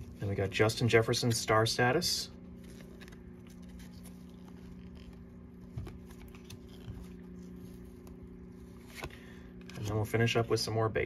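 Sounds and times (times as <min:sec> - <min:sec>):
trading cards sliding: 0:02.5 - 0:09.8.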